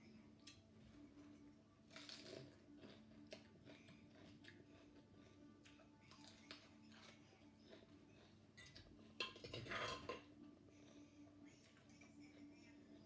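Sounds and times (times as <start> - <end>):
faint steady hum: 0.0 - 13.0
metal spoon scraping ceramic plate: 8.6 - 10.2.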